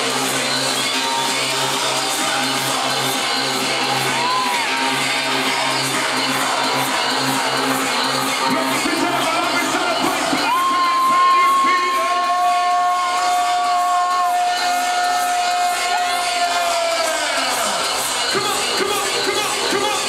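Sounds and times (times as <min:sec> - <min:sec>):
crowd cheering: 0:00.0 - 0:20.0
electronic dance music: 0:00.0 - 0:20.0.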